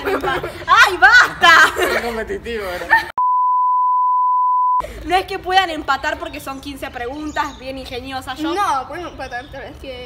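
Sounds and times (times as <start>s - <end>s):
censor bleep: 3.2s - 4.8s.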